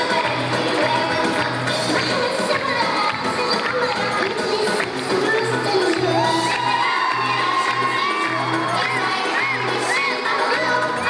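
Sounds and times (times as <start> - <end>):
children shouting and cheering: 1.9 - 11.0.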